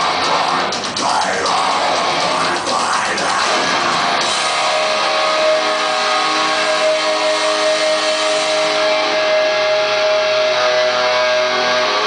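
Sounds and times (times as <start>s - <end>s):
distorted electric guitars: 0.0s - 12.0s.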